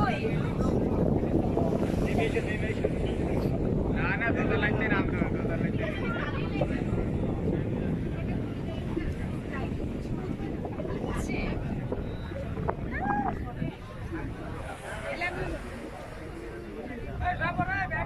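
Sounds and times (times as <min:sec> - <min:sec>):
boat engine rumble: 0:00.0 - 0:18.0
people talking: 0:00.0 - 0:18.0
wind on microphone: 0:00.0 - 0:18.0.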